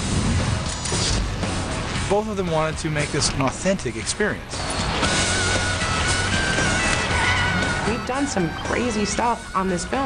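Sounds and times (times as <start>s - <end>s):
film music: 4.0s - 10.0s.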